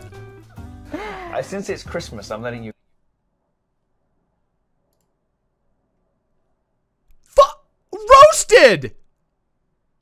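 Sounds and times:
person speaking: 7.2s - 9.0s.

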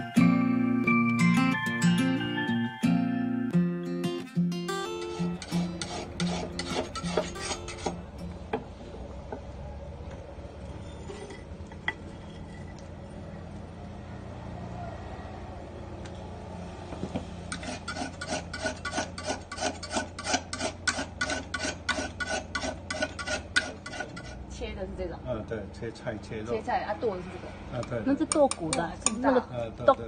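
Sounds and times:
shave rasping on metal blade: 5.0s - 8.2s, 17.4s - 24.4s.

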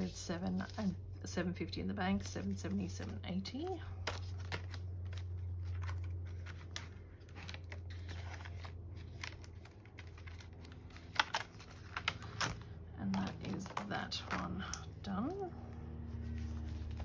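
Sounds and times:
banknotes and plastic rustling: 0.0s - 17.0s
low hum: 0.0s - 17.0s.

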